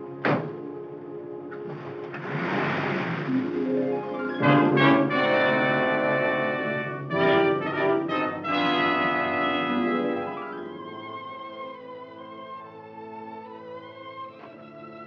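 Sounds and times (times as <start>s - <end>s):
dramatic orchestral music with brass: 0.0s - 15.0s
orchestral chords struck: 4.2s - 10.4s.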